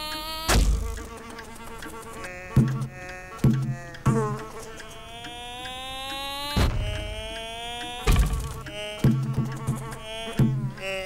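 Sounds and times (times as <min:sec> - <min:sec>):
insect buzzing against window: 0:00.0 - 0:11.0
sharp thumps: 0:00.4 - 0:10.9.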